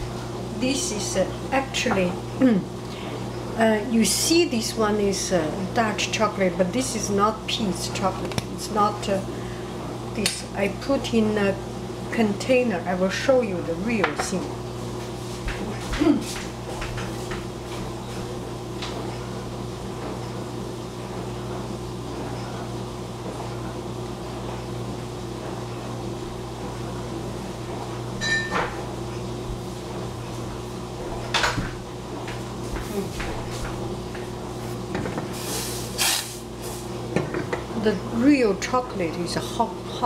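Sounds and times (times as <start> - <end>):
low kitchen hum: 0.0 - 40.0.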